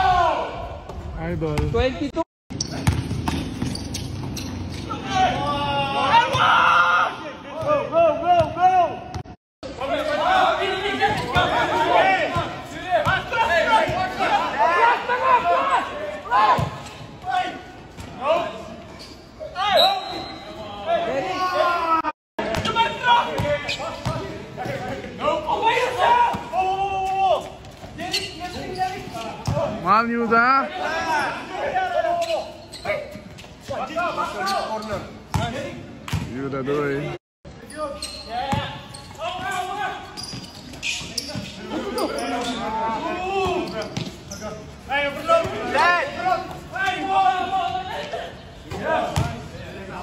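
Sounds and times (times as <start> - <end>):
players shouting: 0.0 - 0.8, 4.9 - 18.8, 19.4 - 35.7, 41.6 - 50.0.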